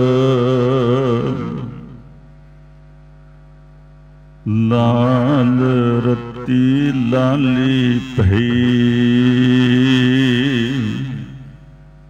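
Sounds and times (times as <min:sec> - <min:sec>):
man chanting: 0:00.0 - 0:02.1, 0:04.4 - 0:11.6
steady drone of held tones: 0:00.0 - 0:12.0.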